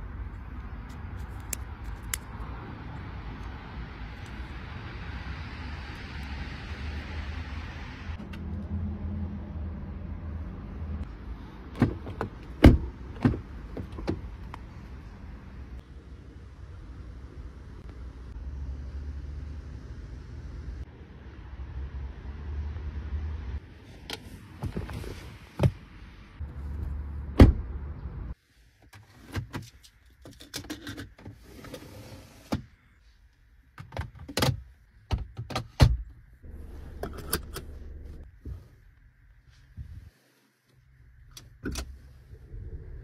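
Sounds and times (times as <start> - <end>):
car door clicks and knocks: 11.7 - 14.3.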